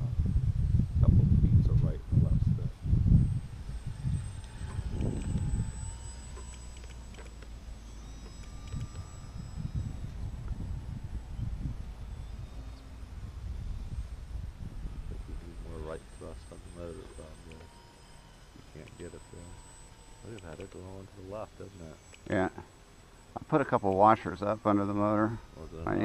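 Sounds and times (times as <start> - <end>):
wind buffeting microphone: 0.0 - 6.1, 8.4 - 16.5
model plane motor drone: 0.0 - 26.0.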